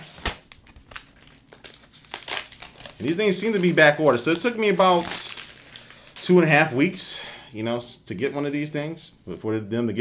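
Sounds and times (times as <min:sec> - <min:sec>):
plastic wrap crinkling: 0:00.0 - 0:06.6.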